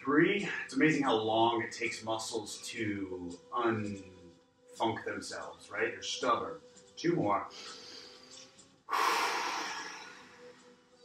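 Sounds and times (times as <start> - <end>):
faint background music: 0.0 - 11.0
man breathing out: 7.6 - 10.6.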